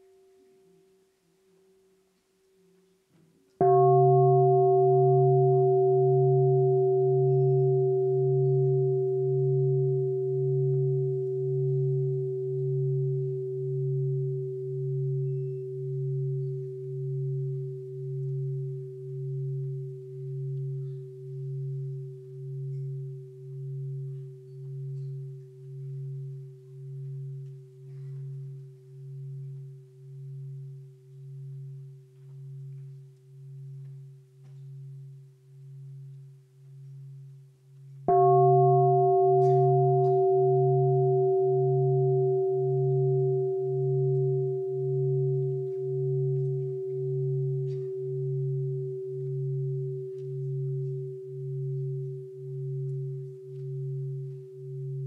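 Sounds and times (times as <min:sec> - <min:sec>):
bowl bell ringing: 0:03.6 - 0:55.0.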